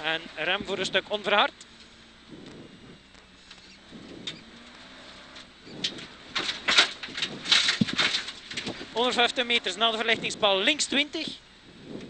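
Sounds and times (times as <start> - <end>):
car engine low steady note: 0.0 - 12.0
gravel hitting car: 5.4 - 11.0.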